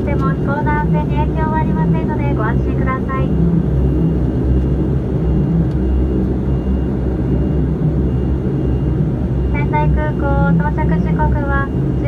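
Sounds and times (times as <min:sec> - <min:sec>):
turboprop engine drone in cabin: 0:00.0 - 0:12.0.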